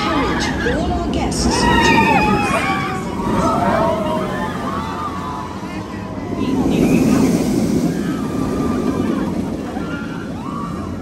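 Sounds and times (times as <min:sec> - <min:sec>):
faint voices: 0:00.0 - 0:11.0
roller coaster rushing past: 0:00.0 - 0:11.0.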